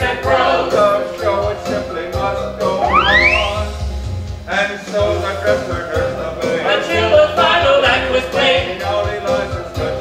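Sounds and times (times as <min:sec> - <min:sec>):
musical theatre singing with instruments: 0:00.0 - 0:10.0.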